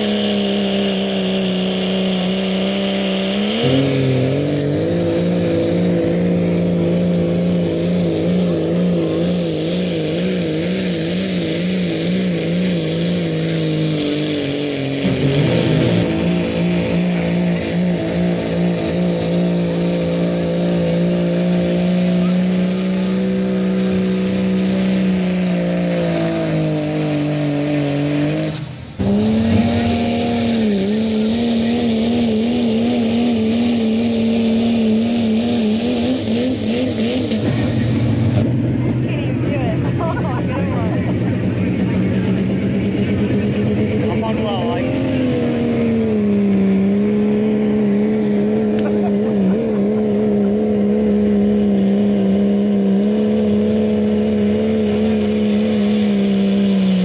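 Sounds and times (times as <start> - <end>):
diesel truck engine at full throttle: 0.0 - 57.0.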